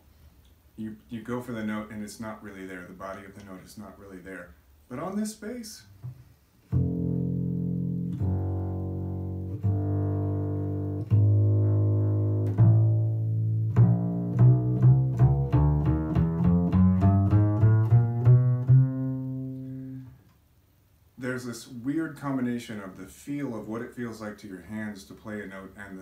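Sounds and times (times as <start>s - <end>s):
double bass plucked notes: 6.0s - 20.3s.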